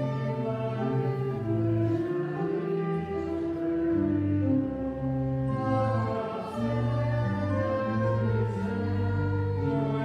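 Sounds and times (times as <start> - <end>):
sacred choral music: 0.0 - 3.7, 4.6 - 10.0.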